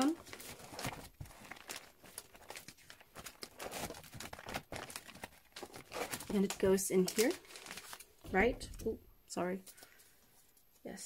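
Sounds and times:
plastic pages rustling and crinkling: 0.0s - 8.9s.

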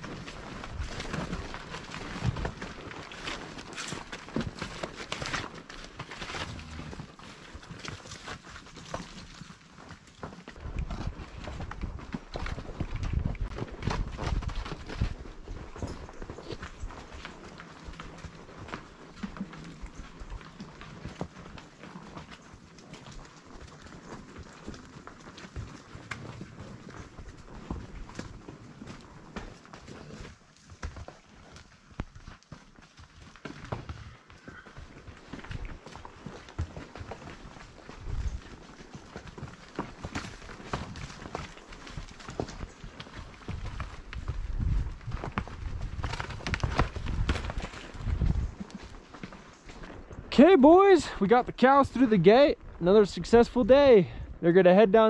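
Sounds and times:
hooves clopping on rocky trail: 0.0s - 55.0s.

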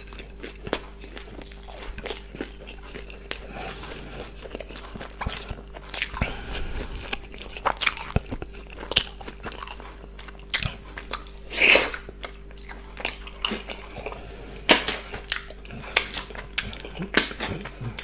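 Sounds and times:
crisp chewing crunches: 0.0s - 18.0s.

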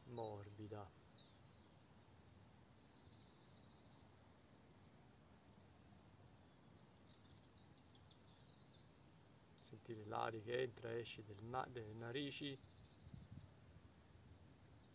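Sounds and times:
faint distant bird chirps: 0.0s - 14.9s.

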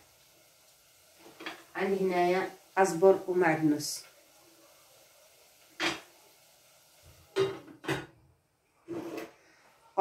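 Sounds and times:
kitchen items knocking on counter: 7.4s - 8.2s.

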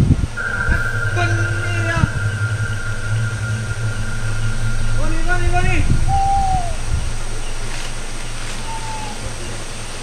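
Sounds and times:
steady low hum: 0.0s - 10.0s
hoot dropping in pitch: 5.8s - 9.5s.

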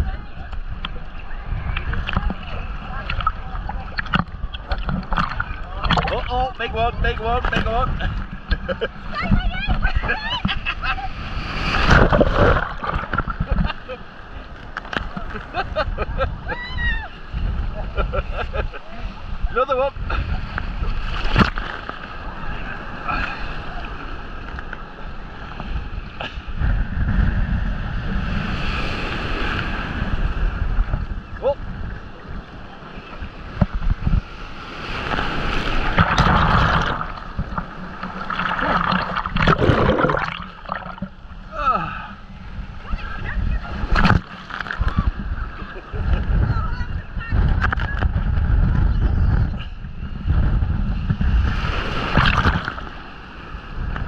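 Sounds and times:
surf breaking and washing: 0.0s - 54.0s
wind rumble on microphone: 0.0s - 54.0s
water splashing against housing: 4.0s - 6.4s, 11.5s - 13.8s, 35.0s - 41.2s.

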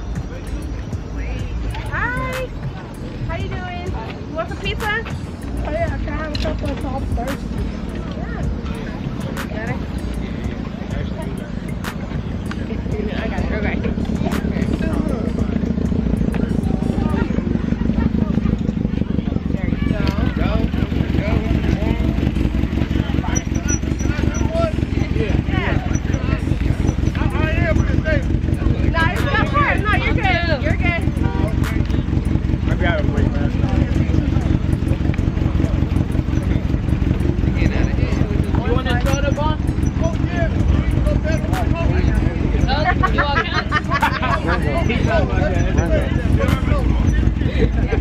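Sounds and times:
car engine rumble: 0.0s - 48.0s
indistinct talking: 0.0s - 48.0s.

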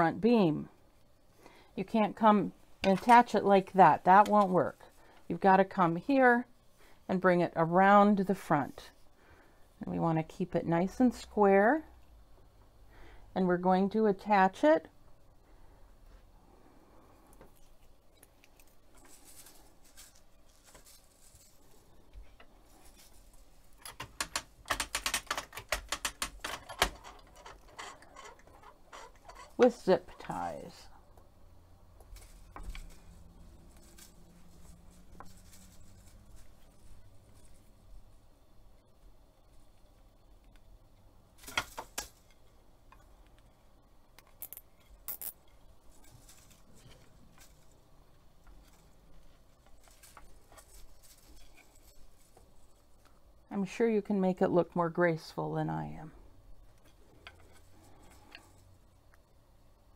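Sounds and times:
zip tie ratcheting: 44.4s - 45.4s.

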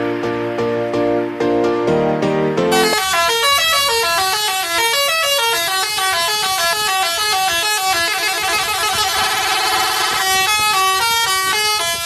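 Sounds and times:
multi-tone bus air horn melody: 2.7s - 12.0s.

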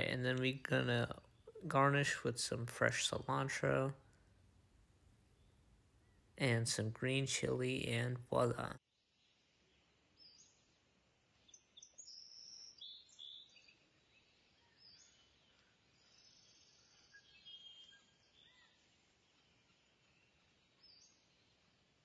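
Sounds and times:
small birds chirping: 5.2s - 22.0s.

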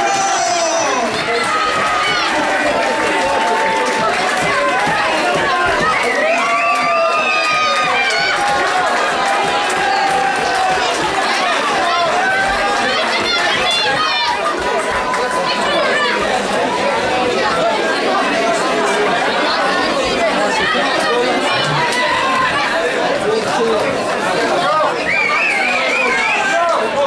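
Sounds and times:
loud crowd chatter: 0.0s - 27.0s.

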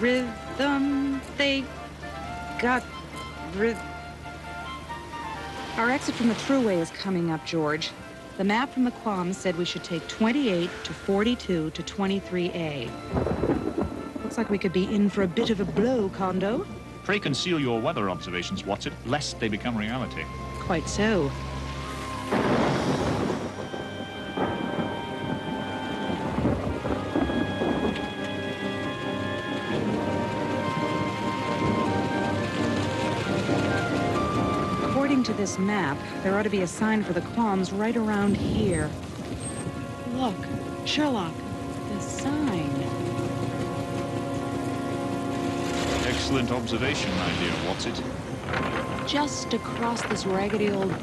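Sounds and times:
background music held notes: 0.0s - 51.0s
heavy rain: 0.0s - 51.0s
rolling thunder: 12.9s - 16.9s, 21.3s - 51.0s
crack of thunder: 13.1s - 14.8s, 22.2s - 28.2s, 45.8s - 51.0s.

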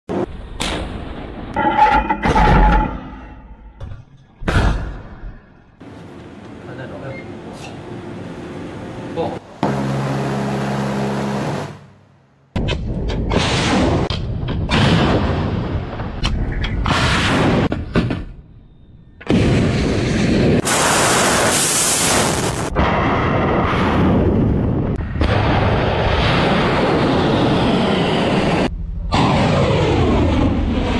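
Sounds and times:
low mechanical drone: 5.1s - 14.7s, 22.7s - 30.9s.

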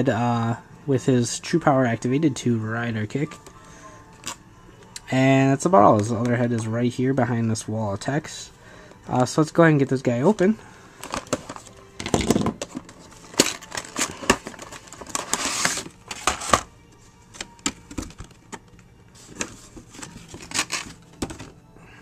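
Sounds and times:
cardboard and plastic scraping rustle: 11.0s - 16.7s, 19.2s - 21.5s
packaging clicks and taps: 11.0s - 16.7s.

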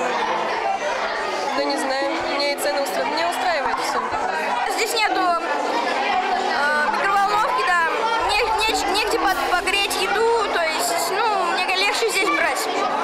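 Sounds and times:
children chattering: 0.0s - 13.0s.

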